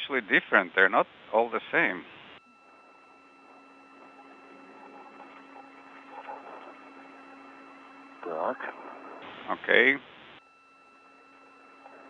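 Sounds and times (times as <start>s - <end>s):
radio channel hiss and hum: 0.0s - 12.0s
faint indistinct murmur: 2.4s - 12.0s.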